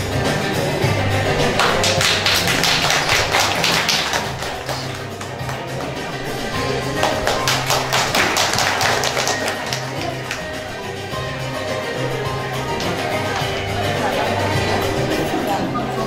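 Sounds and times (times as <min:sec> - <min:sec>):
background music: 0:00.0 - 0:16.0
audience clapping: 0:01.2 - 0:10.9.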